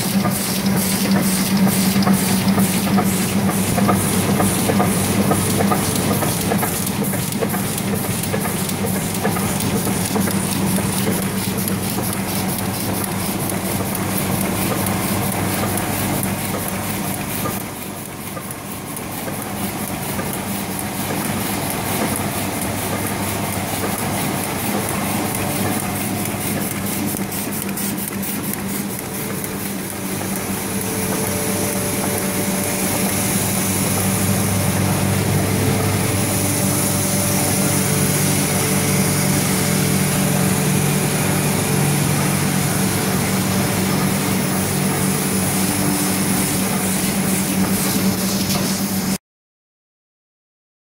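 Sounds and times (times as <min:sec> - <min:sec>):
printing press machine hum: 0:00.0 - 0:49.2.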